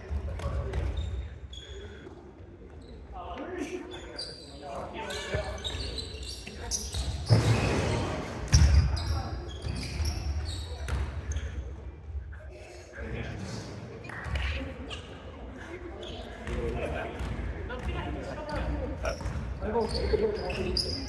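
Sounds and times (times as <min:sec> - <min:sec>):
basketball bouncing on wooden court: 0:08.5 - 0:11.2, 0:16.4 - 0:20.0.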